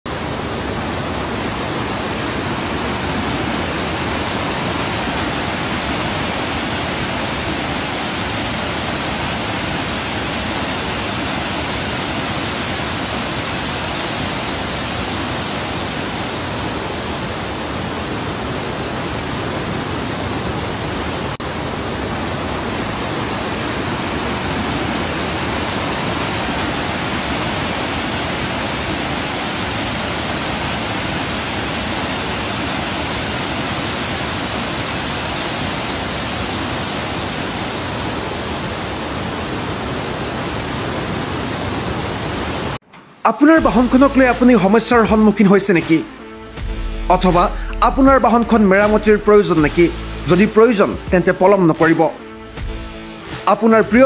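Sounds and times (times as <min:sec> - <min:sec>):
fast-flowing runoff water: 0:00.1 - 0:54.0
heavy rain: 0:00.1 - 0:54.0.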